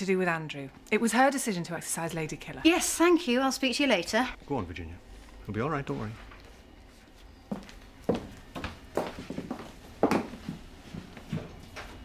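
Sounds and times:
footsteps on hard floor: 6.9s - 12.0s.

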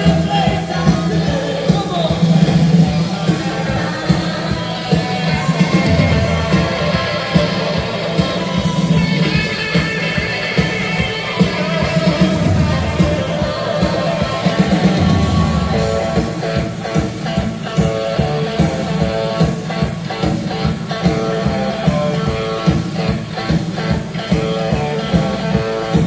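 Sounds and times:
electric guitar: 0.0s - 26.0s
steady drum beat: 0.0s - 26.0s.

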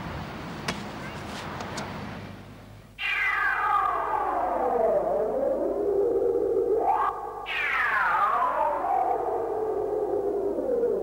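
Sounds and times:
synth rising sweep: 3.0s - 11.0s.

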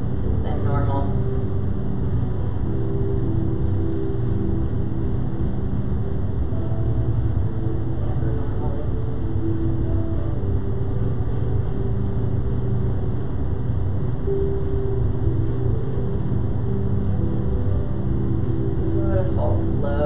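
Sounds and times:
slow music of held tones: 0.0s - 20.0s
steady low rumble: 0.0s - 20.0s.

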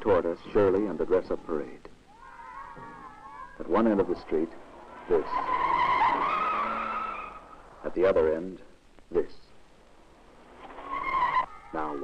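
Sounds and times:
car tyres squealing: 2.1s - 7.8s, 10.2s - 12.0s.

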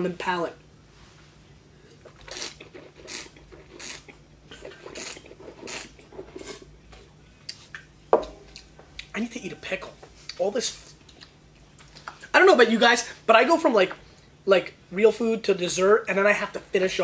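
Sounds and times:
mouth sound: 1.9s - 6.7s
wine slurping: 1.9s - 6.7s.

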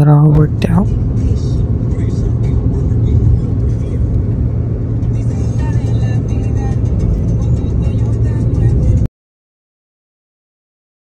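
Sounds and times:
music playing: 0.0s - 9.1s
vehicle rumble: 0.0s - 9.1s.

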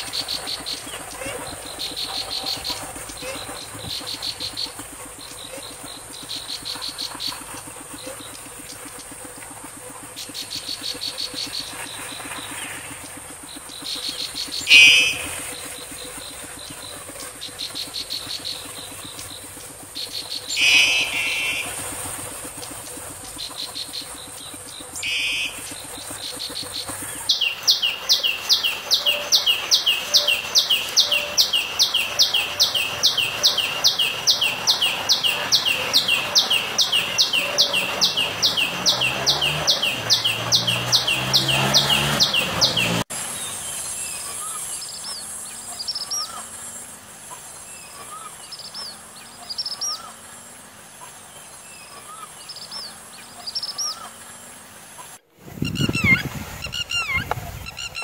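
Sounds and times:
warbler buzzy song: 0.0s - 58.0s
tailorbird repeated sharp note: 14.6s - 15.6s, 20.5s - 21.9s, 25.0s - 25.7s.

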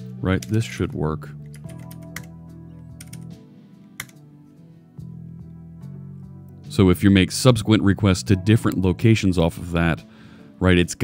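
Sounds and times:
background music: 0.0s - 11.0s
keyboard typing: 0.4s - 0.7s, 1.4s - 2.4s, 3.0s - 3.3s, 4.0s - 4.2s.

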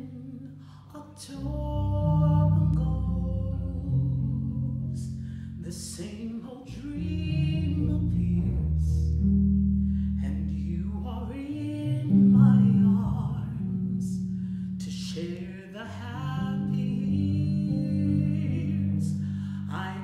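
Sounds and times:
electric bass low notes: 0.0s - 20.0s
woman singing a slow ballad: 0.0s - 20.0s.

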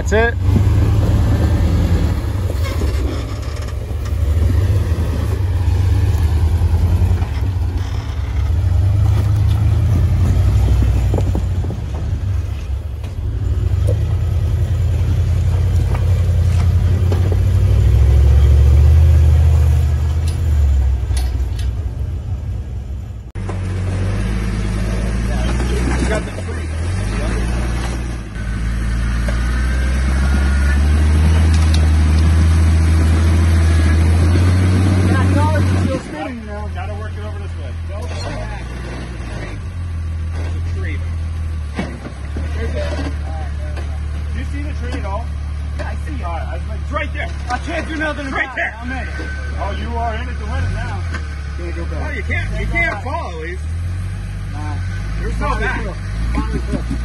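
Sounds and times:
buggy engines crawling over rocks: 0.0s - 57.0s.

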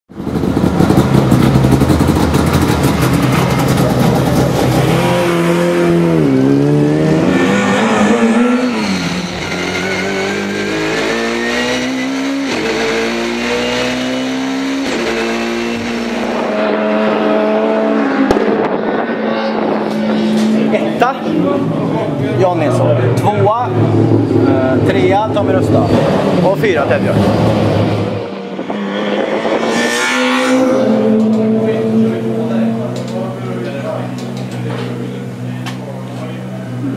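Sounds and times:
race car engine accelerating: 0.1s - 36.9s.

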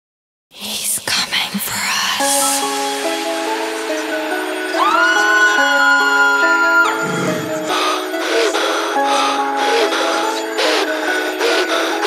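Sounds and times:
whispered voice: 0.6s - 2.5s.

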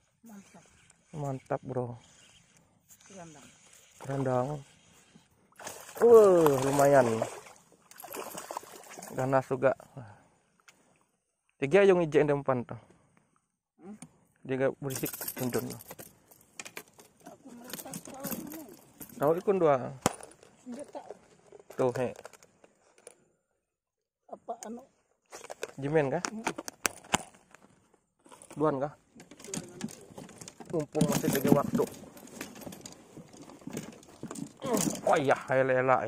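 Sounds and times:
person speaking: 6.0s - 7.3s.

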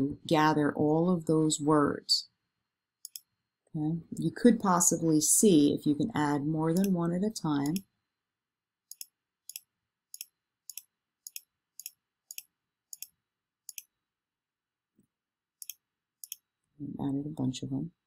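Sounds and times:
computer mouse clicks: 3.0s - 3.3s, 7.6s - 7.8s, 8.9s - 13.9s, 15.6s - 16.4s.

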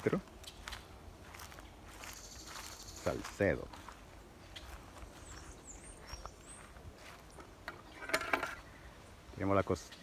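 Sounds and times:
faint countryside ambience: 0.0s - 10.0s
high bird chirps: 2.0s - 3.3s, 4.4s - 9.2s.

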